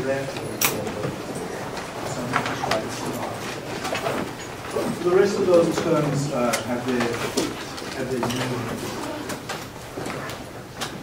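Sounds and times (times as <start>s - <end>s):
low voice murmuring: 7.1s - 10.4s.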